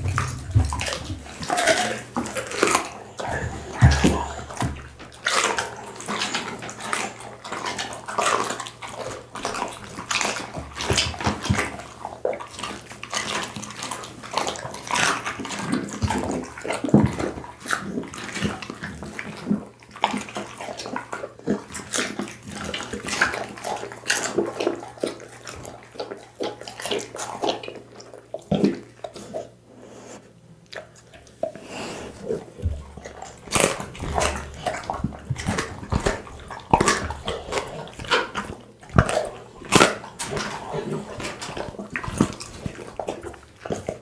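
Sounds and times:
dog chewing raw meat: 0.0s - 44.0s
wet smacking and licking: 0.0s - 44.0s.

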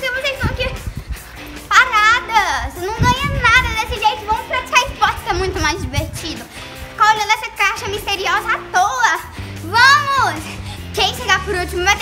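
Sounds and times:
girl talking animatedly: 0.0s - 0.9s, 1.6s - 12.0s
background music: 0.0s - 12.0s.

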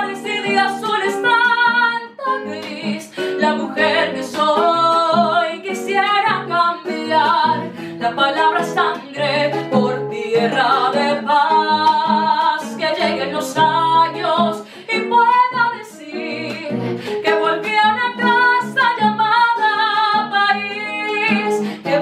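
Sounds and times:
plucked classical guitar: 0.0s - 22.0s
woman singing: 0.0s - 22.0s.

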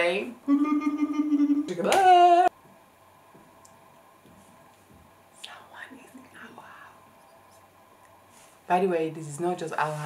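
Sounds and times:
person whispering: 5.4s - 7.0s.

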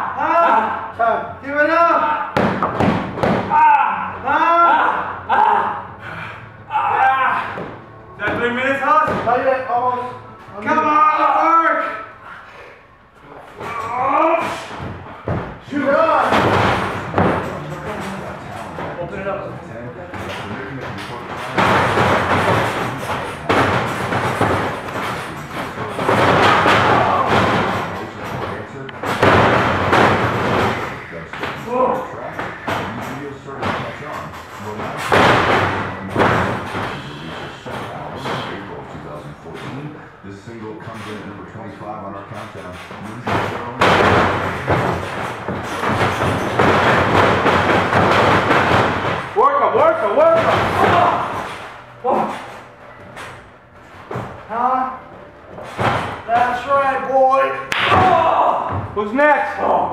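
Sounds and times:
man crying out in strain: 3.5s - 7.6s.

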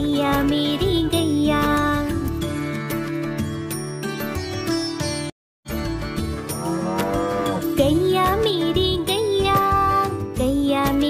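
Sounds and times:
children's song music: 0.0s - 11.0s
cow mooing: 6.5s - 7.8s.

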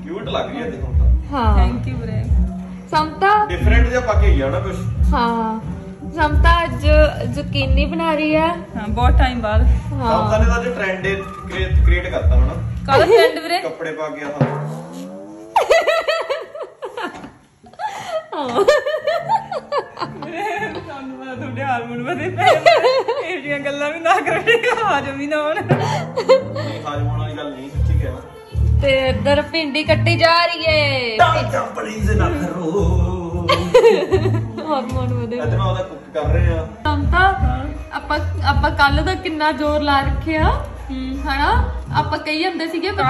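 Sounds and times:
woman laughing: 12.9s - 13.6s, 15.6s - 20.8s, 25.6s - 26.8s, 33.5s - 34.8s.

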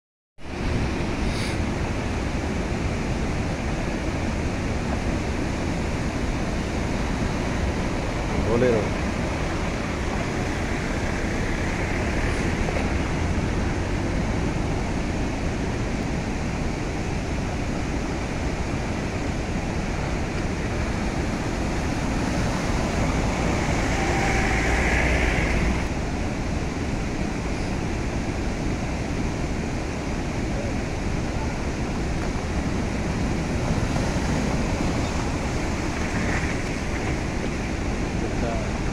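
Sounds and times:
floodwater rushing and cascading: 0.4s - 38.9s.

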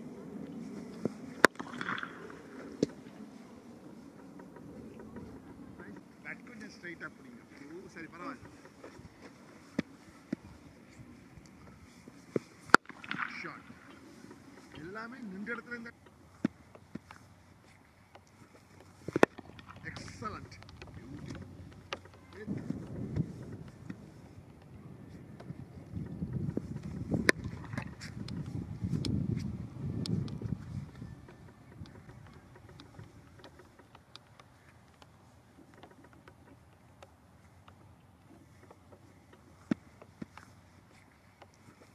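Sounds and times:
faint scattered clicks: 0.0s - 41.9s
wind buffeting microphone: 0.0s - 41.9s.

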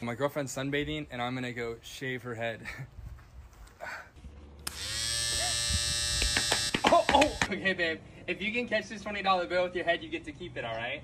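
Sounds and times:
electric hair clippers buzzing: 4.6s - 7.5s.

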